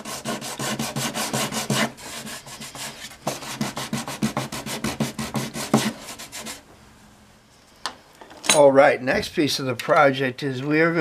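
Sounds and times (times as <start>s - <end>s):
sandpaper rubbing on wood: 0.0s - 6.6s.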